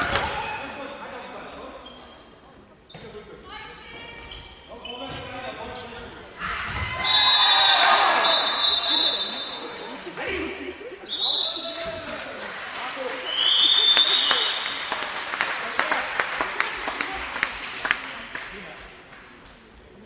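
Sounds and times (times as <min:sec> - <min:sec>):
crowd shouting: 0:06.4 - 0:11.8
players calling: 0:06.4 - 0:17.0
high steady whistle: 0:07.0 - 0:09.6, 0:13.3 - 0:14.8.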